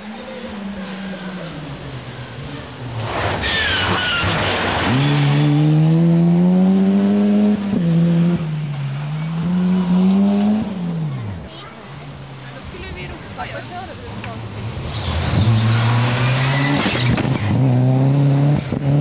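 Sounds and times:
rally car engine passing: 0.0s - 19.0s.

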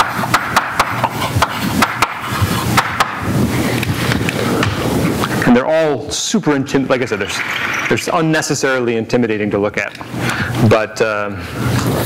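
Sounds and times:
chalk tapping and scraping on blackboard: 0.0s - 5.3s.

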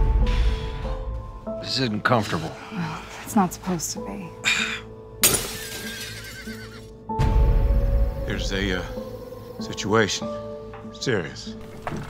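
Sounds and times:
horse whinnying: 6.1s - 6.9s.

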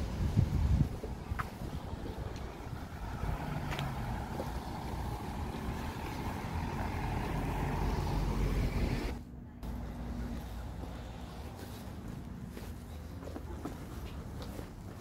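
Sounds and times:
car engine and tyre noise: 0.0s - 15.0s.

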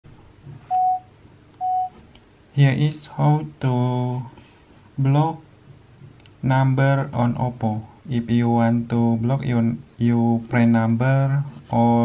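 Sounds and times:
short electronic beeps: 0.7s - 2.0s.

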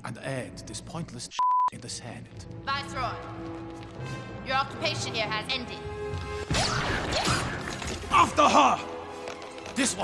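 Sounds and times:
orchestral music: 2.5s - 10.0s.

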